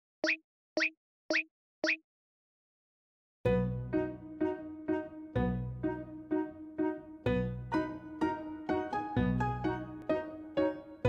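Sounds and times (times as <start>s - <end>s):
short upward chirping pops: 0.2s - 2.0s.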